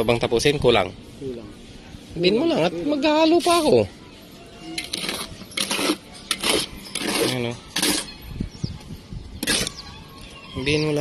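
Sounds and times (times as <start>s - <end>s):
trowel scraping mortar: 4.7s - 8.2s, 9.4s - 9.8s.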